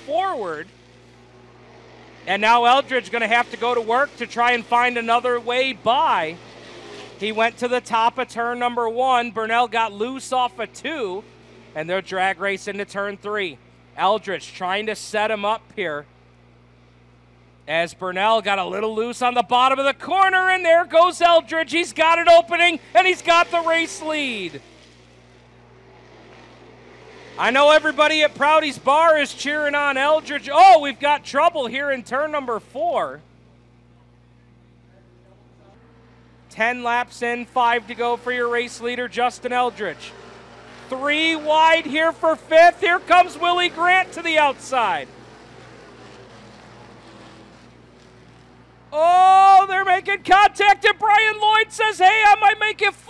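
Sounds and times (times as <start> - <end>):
race cars running laps: 0.0 - 15.7, 18.0 - 52.8.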